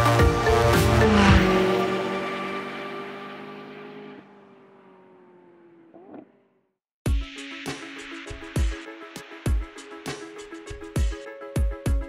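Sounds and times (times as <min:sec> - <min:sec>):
car engine pulling away: 0:00.0 - 0:06.6.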